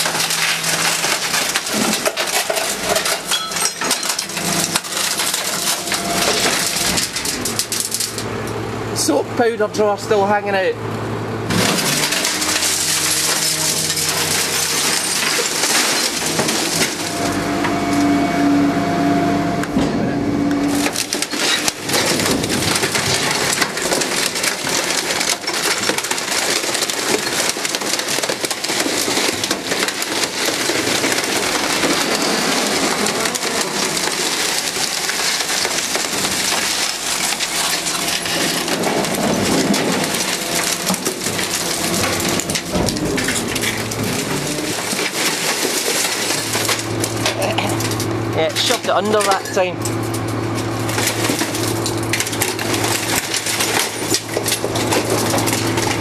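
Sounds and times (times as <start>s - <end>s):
steady hum: 0.0s - 25.3s
metal and plastic crunching: 0.0s - 56.0s.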